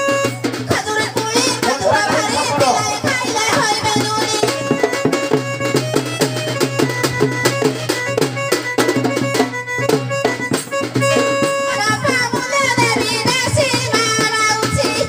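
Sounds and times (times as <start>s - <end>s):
quick busy drum beat: 0.0s - 15.0s
reedy folk melody: 0.0s - 15.0s.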